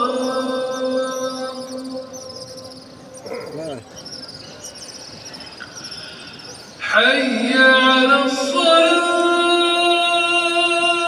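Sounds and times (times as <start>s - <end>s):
murmur of large crowd: 0.0s - 11.0s
rapid high-pitched chirping: 0.2s - 6.8s
call to prayer: 3.3s - 4.0s, 6.8s - 11.0s.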